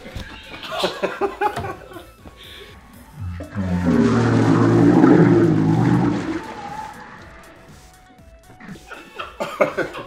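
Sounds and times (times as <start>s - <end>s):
man retching and vomiting: 3.2s - 6.5s
liquid gushing: 3.2s - 7.0s.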